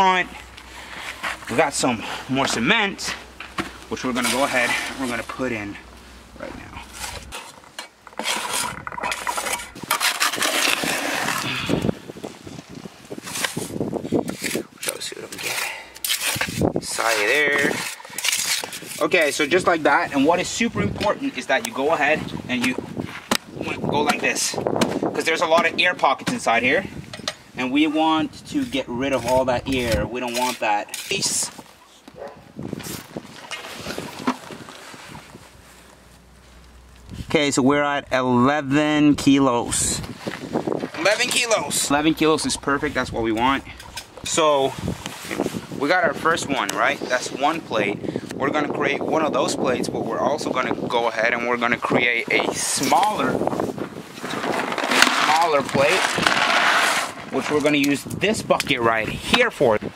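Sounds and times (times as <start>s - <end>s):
trowel scraping wet cement: 3.9s - 5.8s, 6.6s - 11.9s, 13.1s - 23.4s, 28.1s - 31.6s, 51.8s - 58.0s.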